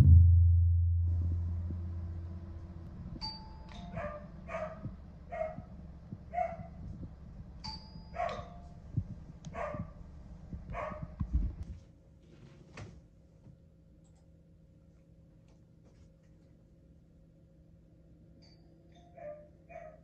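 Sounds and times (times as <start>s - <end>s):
two-tone doorbell chime: 3.2s - 4.0s, 7.6s - 8.7s
dog barking: 3.8s - 5.7s, 6.3s - 6.8s, 8.2s - 8.6s, 9.5s - 10.0s, 10.7s - 11.2s, 19.2s - 20.0s.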